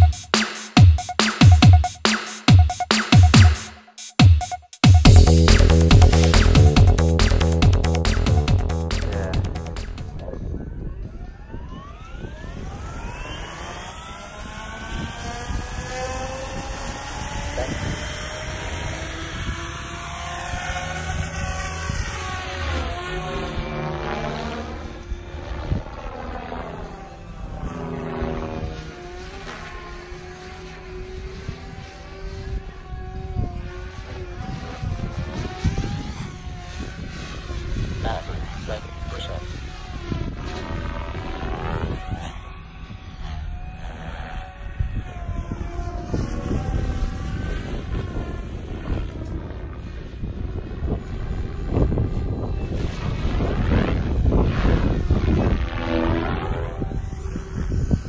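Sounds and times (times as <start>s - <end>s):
rc helicopter flying overhead: 0.0s - 58.0s.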